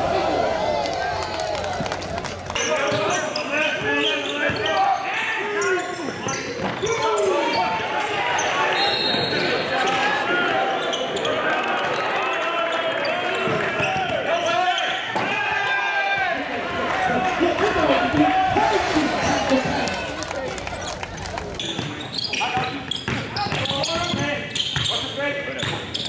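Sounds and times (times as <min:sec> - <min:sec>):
indistinct echoing voices: 0:00.0 - 0:03.4, 0:16.6 - 0:22.1
sneakers squeaking: 0:18.8 - 0:26.0.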